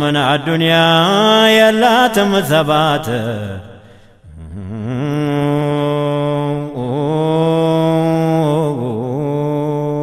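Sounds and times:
man chanting unaccompanied: 0.0s - 10.0s.

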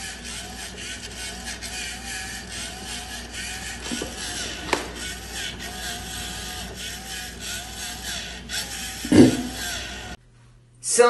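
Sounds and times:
small motor whirring: 0.0s - 10.2s.

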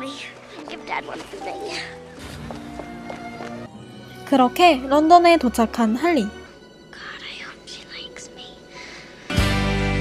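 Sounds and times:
girl whispering: 6.9s - 8.7s.

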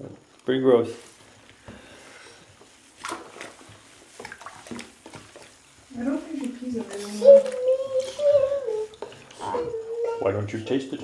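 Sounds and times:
bath water splashing: 2.7s - 10.0s.

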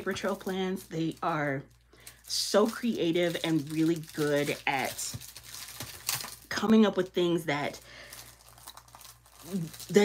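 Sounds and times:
woman speaking: 0.0s - 5.2s, 6.5s - 7.8s, 9.4s - 10.0s
cellophane crinkling: 0.0s - 10.0s.

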